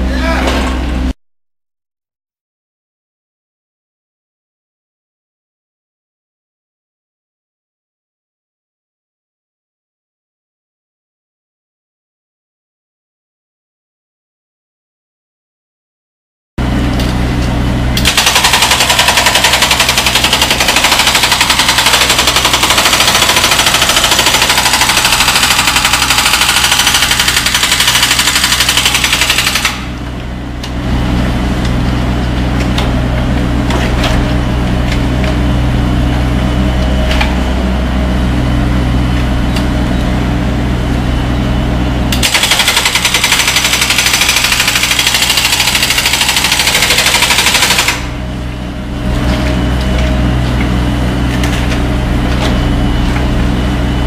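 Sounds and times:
excavator engine running: 16.6 - 54.0
hydraulic breaker hammering concrete: 18.0 - 30.0, 42.1 - 48.2.

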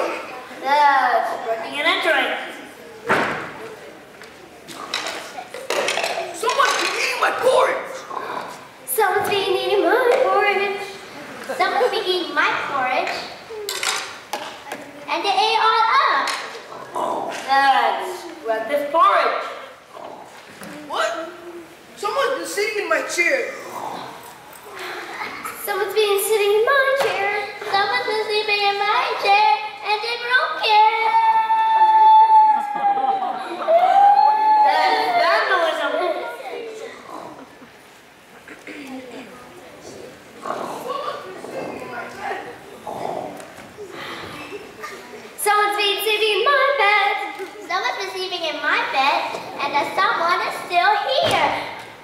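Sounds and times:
young actors' voices: 0.0 - 52.0
child wailing: 31.0 - 35.7.

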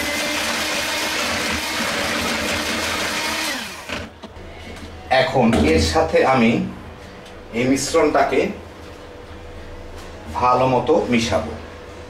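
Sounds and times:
electric hand mixer whipping: 0.0 - 4.2.

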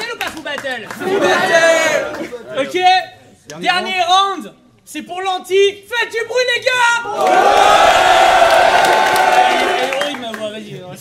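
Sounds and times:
audience cheering and shouting: 7.1 - 10.0.

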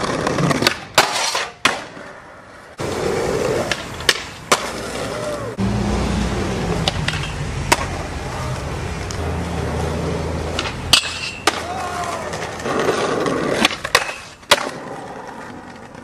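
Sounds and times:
skateboard clacks: 0.0 - 2.2, 2.8 - 5.5, 6.6 - 9.2, 10.4 - 16.0
skateboard wheels rolling on concrete: 0.0 - 16.0.

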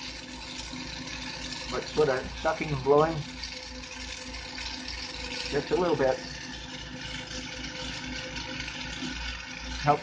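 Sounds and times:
torch flame hissing: 0.0 - 10.0.

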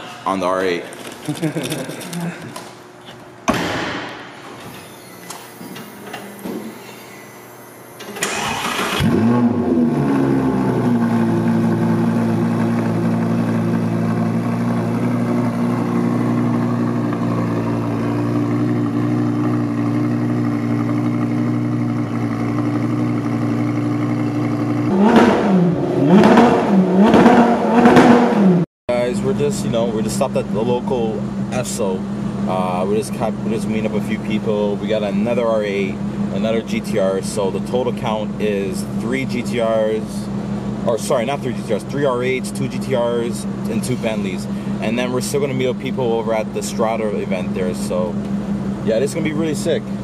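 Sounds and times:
starter motor cranking: 8.0 - 9.4
car engine revving and idling: 8.2 - 50.0.

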